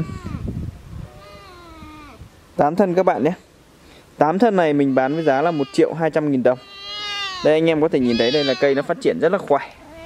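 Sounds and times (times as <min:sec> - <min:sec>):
cat meowing: 0:06.6 - 0:09.0.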